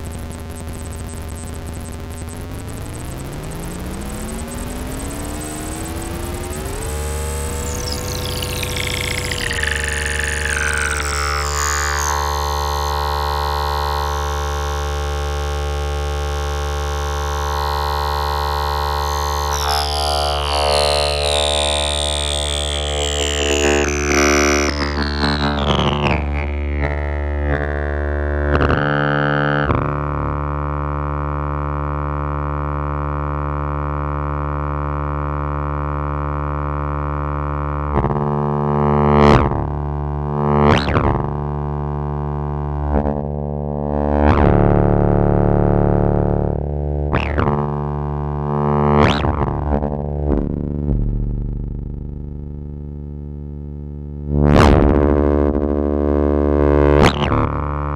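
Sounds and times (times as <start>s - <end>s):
buzzy synthesizer drone: 0.0s - 57.9s.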